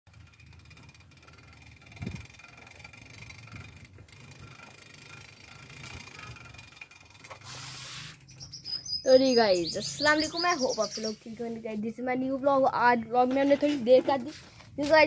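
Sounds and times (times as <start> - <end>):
freewheel ratchet ticking: 0.1 - 8.8
bike rolling over bricks: 0.1 - 15.0.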